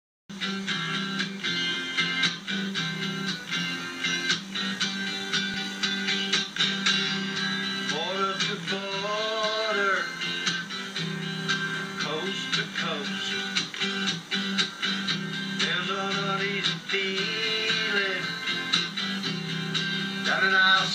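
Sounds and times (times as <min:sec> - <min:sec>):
acoustic guitar strumming: 0:00.3 - 0:20.9
man singing: 0:07.8 - 0:10.2, 0:11.9 - 0:13.8, 0:15.5 - 0:18.6, 0:20.2 - 0:20.9.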